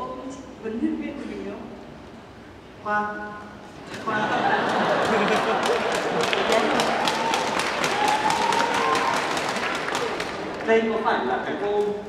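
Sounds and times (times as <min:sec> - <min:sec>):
crowd cheering: 0:04.1 - 0:10.7
audience clapping: 0:04.4 - 0:11.8.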